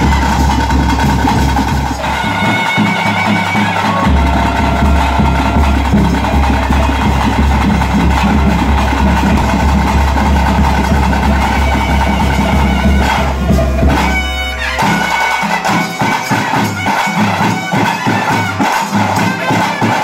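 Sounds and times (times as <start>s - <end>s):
held pipe-like tones: 0.0s - 18.2s
drums beating steadily: 0.0s - 20.0s.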